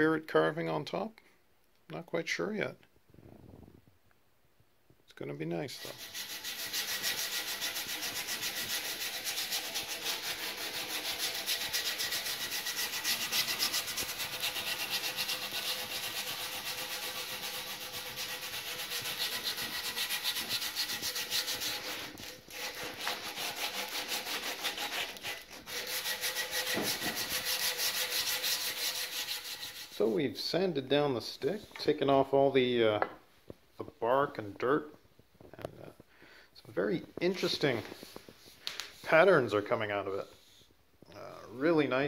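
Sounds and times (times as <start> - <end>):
sandpaper rubbing on wood: 5.8 - 30.2.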